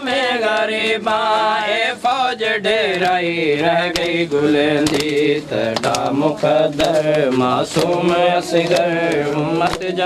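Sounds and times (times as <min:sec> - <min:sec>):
men singing a lament: 0:00.0 - 0:10.0
hand slaps on chest: 0:03.9 - 0:04.2, 0:04.8 - 0:06.1.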